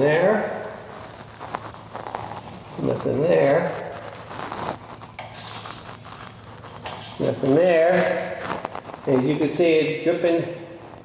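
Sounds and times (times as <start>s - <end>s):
bristle brush scratching: 0.8s - 11.0s.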